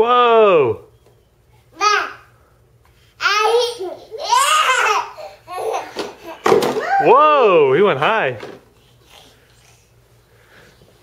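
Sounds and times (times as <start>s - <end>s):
baby laughing: 3.4s - 6.5s.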